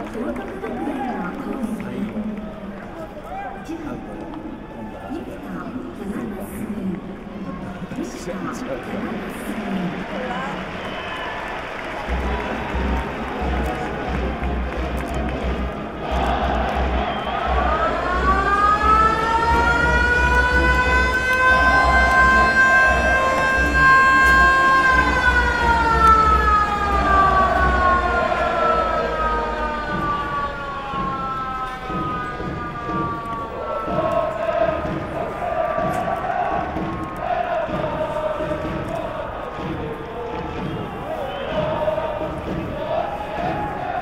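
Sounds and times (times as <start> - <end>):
crowd noise: 0.0 - 44.0
motor siren wailing: 16.3 - 34.8.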